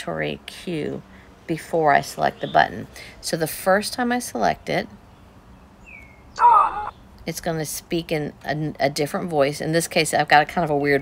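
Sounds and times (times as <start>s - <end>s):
synthetic app voice speaking: 6.4s - 6.9s.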